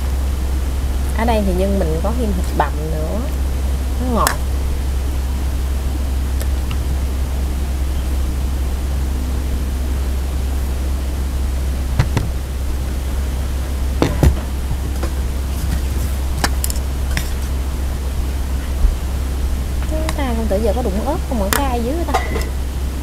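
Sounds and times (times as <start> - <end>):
steady low hum: 0.0 - 23.0
utensils clinking on plates: 21.6 - 22.6.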